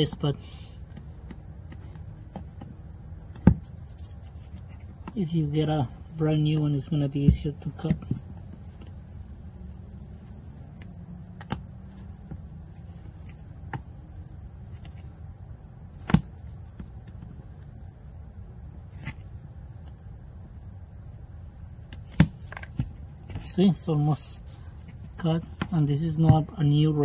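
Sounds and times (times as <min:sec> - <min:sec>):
crickets chirping: 0:00.0 - 0:27.0.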